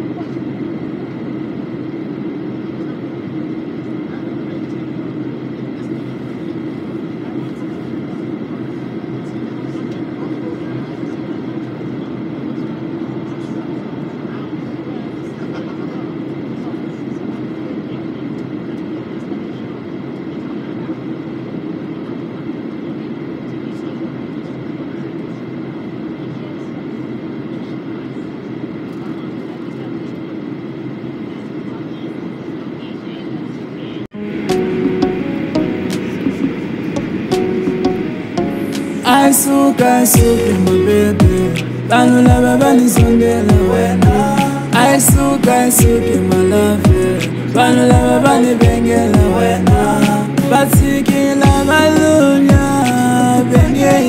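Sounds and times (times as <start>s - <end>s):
jet cabin engine rush: 0.0s - 54.0s.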